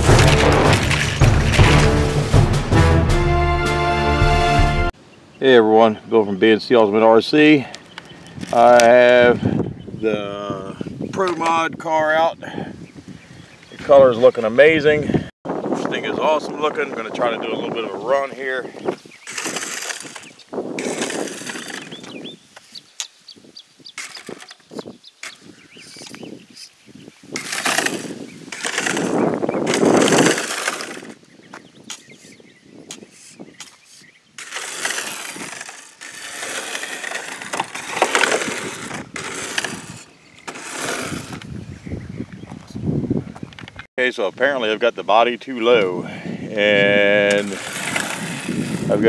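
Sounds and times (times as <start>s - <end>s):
screws grinding on road: 19.0s - 22.4s, 24.0s - 26.2s, 27.3s - 31.3s, 32.9s - 41.5s, 47.2s - 49.0s.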